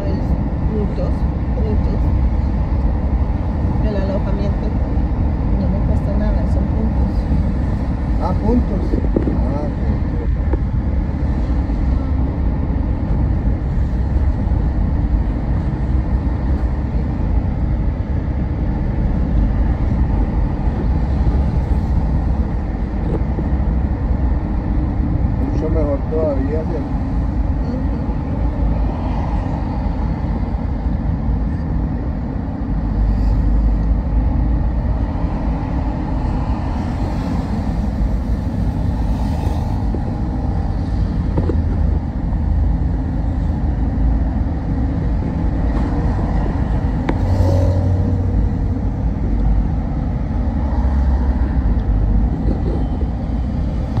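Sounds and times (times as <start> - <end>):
car road and engine rumble: 0.0 - 54.0
passing vehicles hiss: 25.4 - 54.0.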